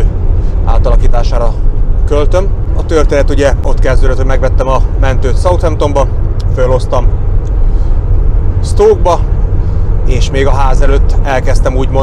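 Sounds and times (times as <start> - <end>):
low vehicle rumble: 0.0 - 12.0
man's voice: 10.1 - 12.0.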